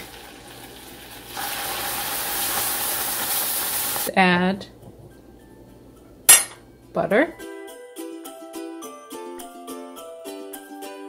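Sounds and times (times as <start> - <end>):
bubbling sauce hissing: 0.0 - 4.1.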